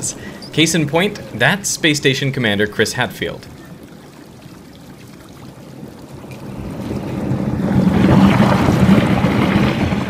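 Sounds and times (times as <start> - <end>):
rushing swirling water: 0.0 - 10.0.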